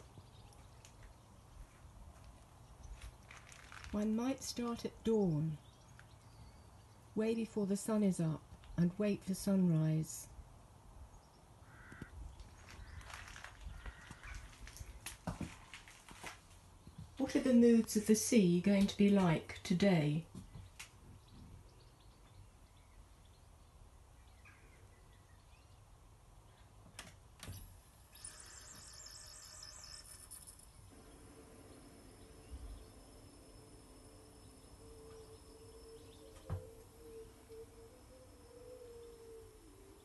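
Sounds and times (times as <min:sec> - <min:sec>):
faint bird calls: 0:11.6 - 0:14.8, 0:34.4 - 0:40.0
small bird chirping: 0:28.1 - 0:40.0.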